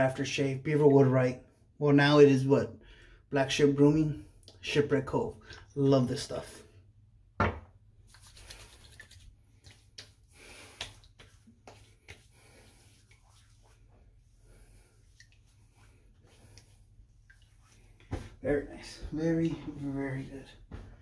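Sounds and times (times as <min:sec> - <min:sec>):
hands rubbing: 0:08.0 - 0:18.4
hands patting face: 0:08.1 - 0:13.7.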